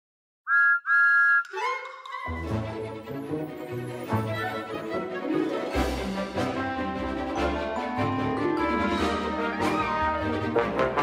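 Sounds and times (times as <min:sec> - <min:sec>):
music: 0:01.5 - 0:11.0.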